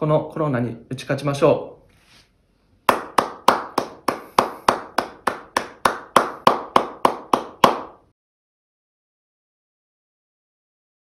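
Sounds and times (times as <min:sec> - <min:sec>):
person clapping hands: 0:02.9 - 0:08.0.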